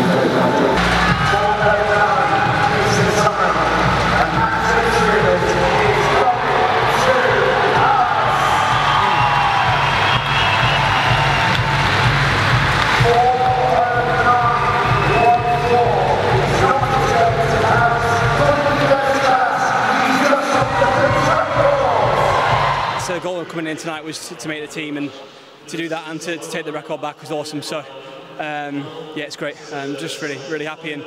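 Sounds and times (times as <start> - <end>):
crowd cheering and shouting: 0.0 - 23.5
background music with steady beat: 0.0 - 24.7.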